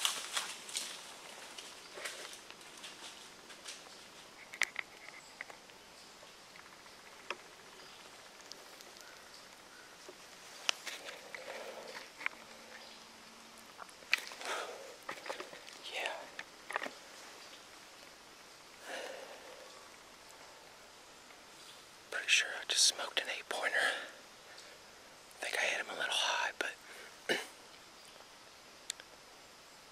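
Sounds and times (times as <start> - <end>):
close breathing: 10.8 - 12.9, 14.2 - 16.4, 18.8 - 20.7, 26.8 - 27.3
man whispering: 10.9 - 12.7, 14.3 - 16.4, 18.8 - 19.8, 22.1 - 24.3, 25.4 - 27.0
light rustling: 13.6 - 18.2.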